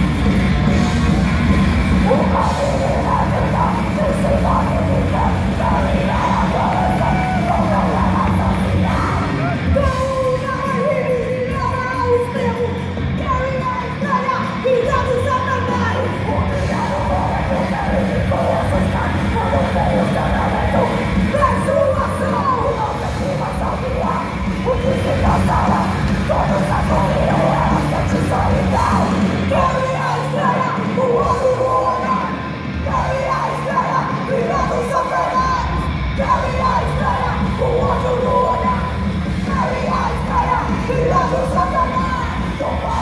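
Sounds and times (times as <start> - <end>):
heavy metal band playing live: 0.0 - 43.0
shouted vocals: 1.2 - 43.0.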